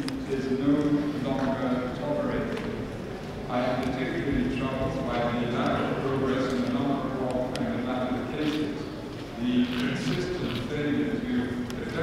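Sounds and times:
man giving a formal address: 0:00.0 - 0:12.0.

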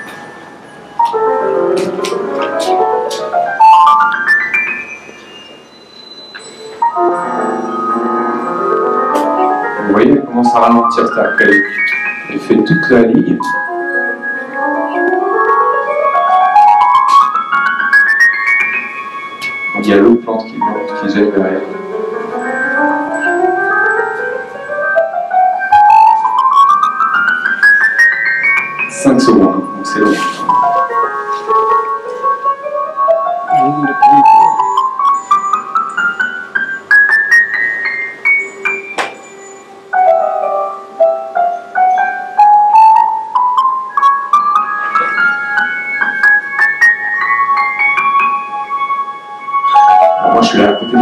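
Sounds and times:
synthesized piano-like notes rising: 0:00.0 - 0:51.0
voices: 0:33.5 - 0:34.5, 0:50.2 - 0:51.0.

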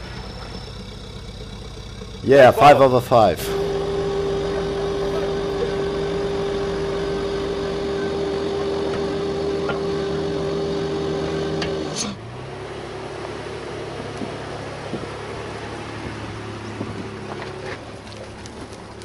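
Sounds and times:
off-road vehicle engine whining: 0:00.0 - 0:19.0.

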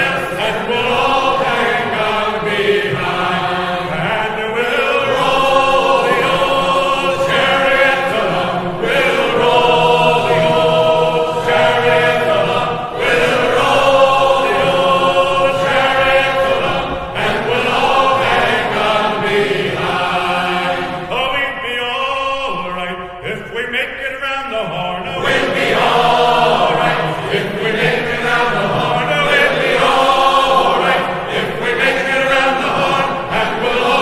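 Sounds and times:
choir singing in harmony: 0:00.0 - 0:23.8, 0:24.5 - 0:34.0.

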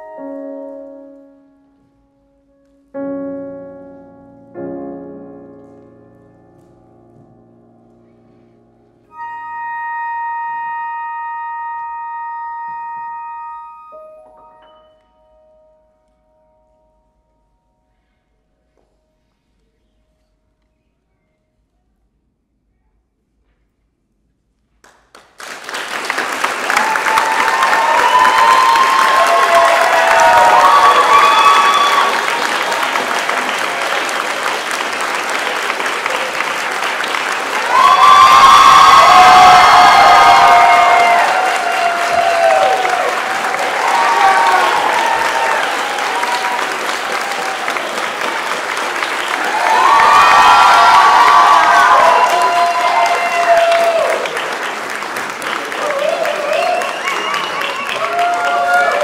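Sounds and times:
audience applause: 0:24.8 - 0:59.0
crowd cheering and whooping: 0:26.5 - 0:59.0.

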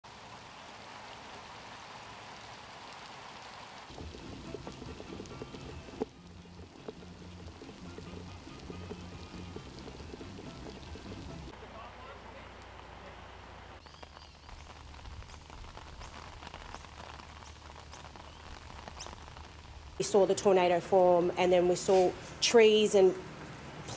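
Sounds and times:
heavy rain hissing: 0:00.0 - 0:23.9
background music low notes: 0:03.9 - 0:13.8.

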